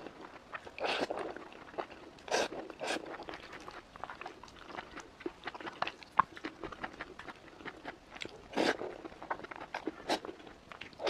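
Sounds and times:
wet chewing and lip smacks: 0.0 - 11.0
slurping: 0.6 - 3.8, 8.5 - 10.4.

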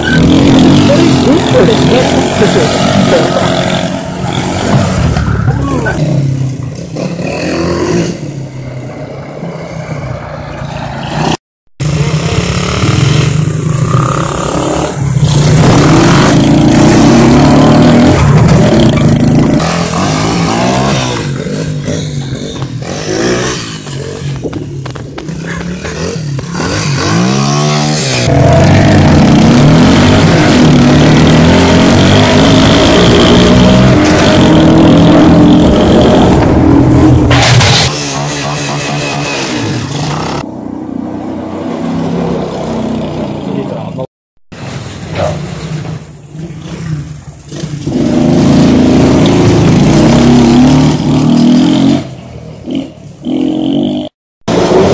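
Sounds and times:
small motorbike engines revving: 0.0 - 40.5, 45.2 - 54.9.

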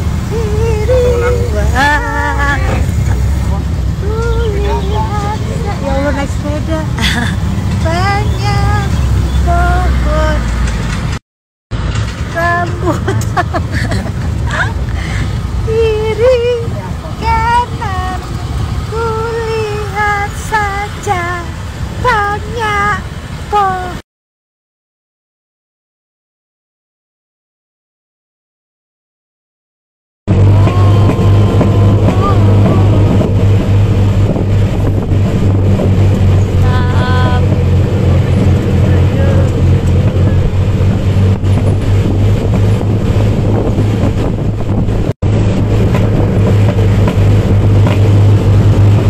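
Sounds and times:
high voice singing: 0.0 - 10.6, 12.3 - 13.4, 14.5 - 24.0, 30.3 - 35.1, 35.7 - 40.5
vehicle engine rumble: 0.0 - 24.0, 30.3 - 49.0
person calling out: 0.9 - 3.0
wind noise: 30.3 - 49.0.

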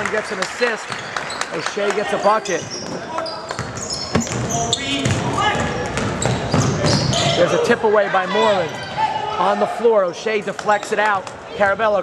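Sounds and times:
voices of players and crowd: 0.0 - 12.0
sneakers squeaking: 0.6 - 12.0
basketball bouncing on hardwood floor: 2.6 - 7.2.

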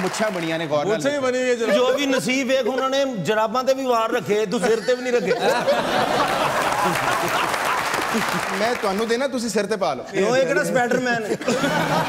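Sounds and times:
audience clapping: 0.0 - 1.1, 5.8 - 9.6.

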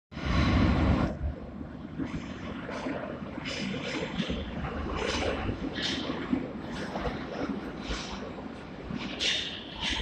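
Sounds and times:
metro train rumbling: 0.1 - 10.0.

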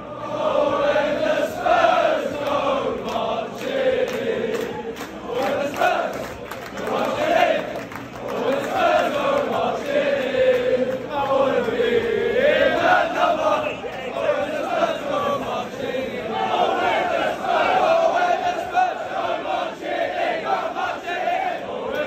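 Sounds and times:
crowd singing a chant: 0.0 - 22.0.

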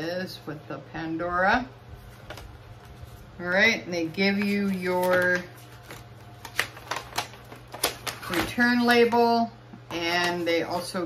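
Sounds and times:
stiff paper crinkling and snapping: 4.2 - 9.2.

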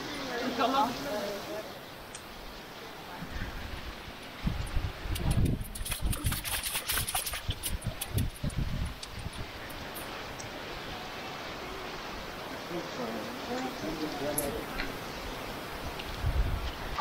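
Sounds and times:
flowing river water: 0.0 - 17.0
footsteps splashing through shallow water: 5.1 - 10.1.

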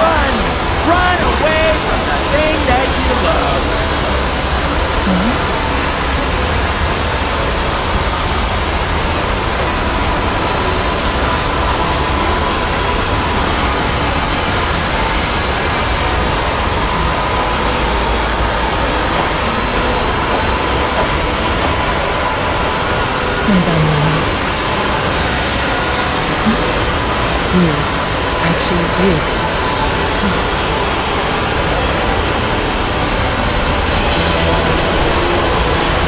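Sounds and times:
many soundtracks blending: 0.0 - 36.0.

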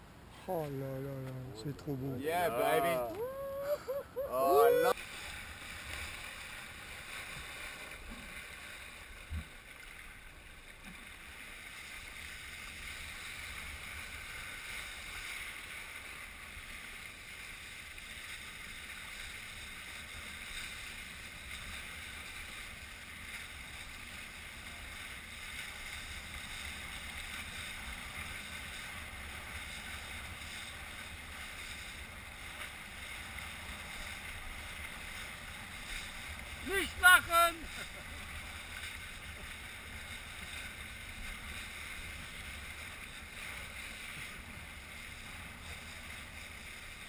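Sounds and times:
wind and water rushing: 0.0 - 47.0
short shout: 2.2 - 5.0, 36.6 - 37.7.

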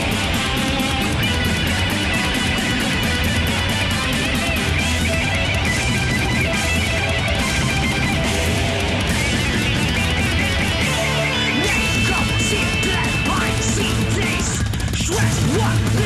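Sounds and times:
thrash metal instrumental: 0.0 - 16.0.

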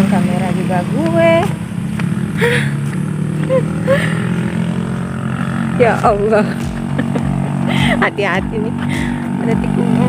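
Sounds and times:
woman's voice: 0.0 - 1.6, 5.8 - 10.0
vehicle engine humming: 0.0 - 10.0.

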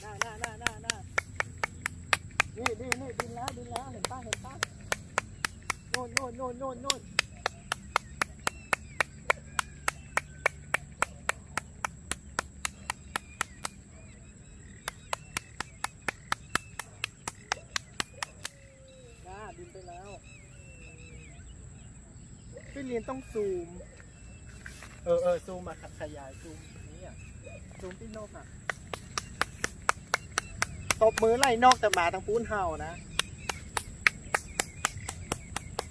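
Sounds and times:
hands clapping loudly: 0.0 - 13.8, 14.7 - 18.7, 28.6 - 32.2, 33.0 - 35.9.

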